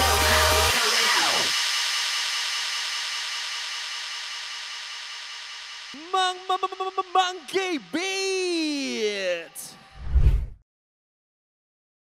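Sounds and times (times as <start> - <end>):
hissing noise tail: 0.0 - 10.6.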